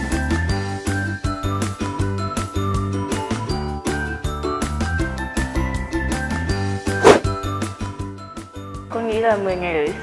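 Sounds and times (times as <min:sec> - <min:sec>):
short swish of noise: 0:06.9 - 0:07.3.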